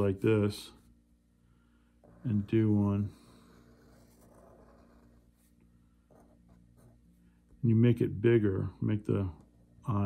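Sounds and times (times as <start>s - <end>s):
pen scratching on paper: 2.0s - 7.0s.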